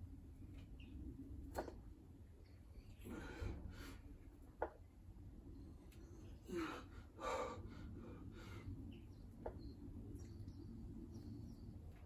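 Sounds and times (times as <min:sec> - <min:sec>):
low outdoor background: 0:00.0 - 0:12.0
man breathing hard: 0:03.0 - 0:04.1, 0:06.4 - 0:08.8.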